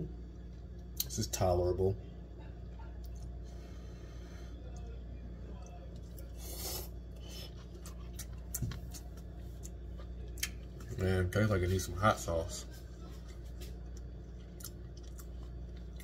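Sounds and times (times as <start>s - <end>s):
steady low hum: 0.0s - 16.0s
faint eating clicks: 13.8s - 16.0s.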